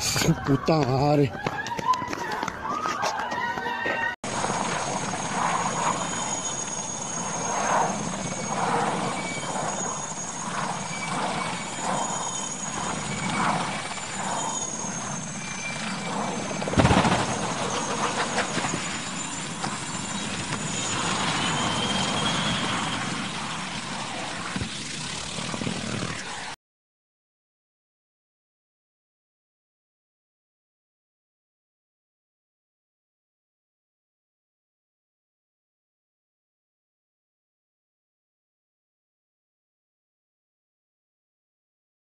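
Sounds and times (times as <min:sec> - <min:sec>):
helicopter crash: 0:04.2 - 0:26.6
helicopter turbine whine: 0:04.2 - 0:26.6.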